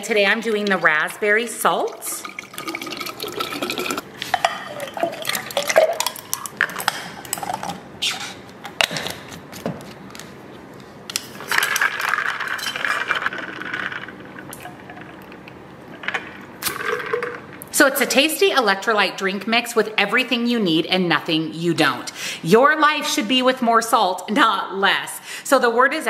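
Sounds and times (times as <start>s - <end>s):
ice and water sloshing in bottle: 0.4s - 7.6s.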